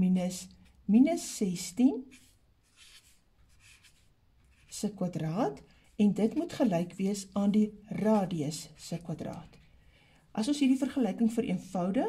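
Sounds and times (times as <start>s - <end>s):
felt-tip pen scratching on paper: 2.0s - 4.9s.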